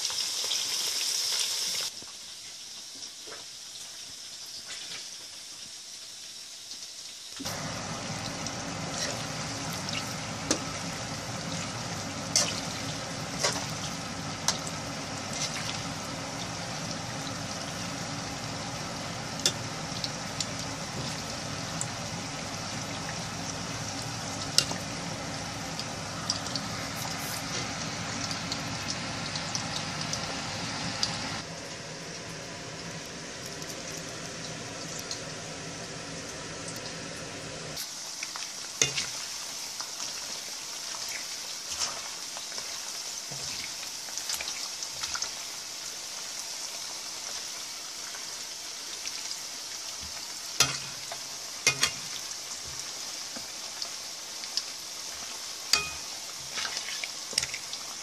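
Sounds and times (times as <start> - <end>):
deep-frying sizzle with pops: 0.0 - 58.0.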